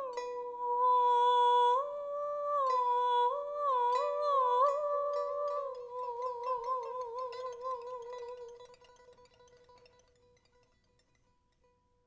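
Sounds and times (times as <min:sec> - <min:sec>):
pipa plucking: 0:00.0 - 0:12.0.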